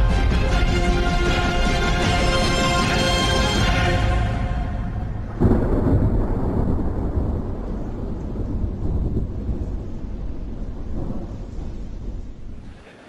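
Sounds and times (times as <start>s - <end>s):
deep boom: 0.0s - 12.6s.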